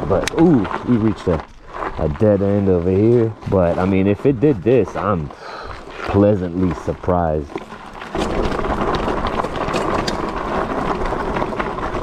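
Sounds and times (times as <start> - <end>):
tyres rolling over gravel: 0.0 - 12.0.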